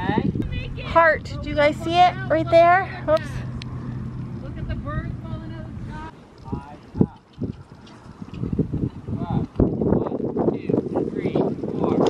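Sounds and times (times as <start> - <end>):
steady low hum: 0.3 - 6.3.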